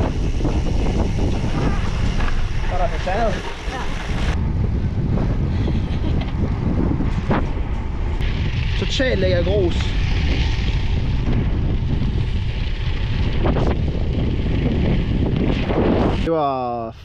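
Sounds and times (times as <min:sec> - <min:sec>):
wind buffeting microphone: 0:00.0 - 0:16.3.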